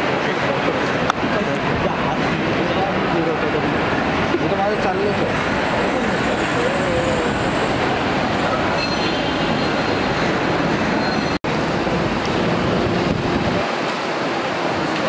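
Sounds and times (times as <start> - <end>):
busy airport rumble: 0.0 - 15.0
indistinct voices talking: 0.0 - 15.0.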